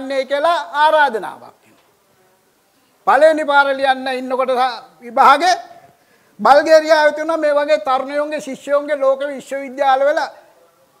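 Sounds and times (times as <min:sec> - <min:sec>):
man speaking: 0:00.0 - 0:01.8, 0:03.0 - 0:10.8.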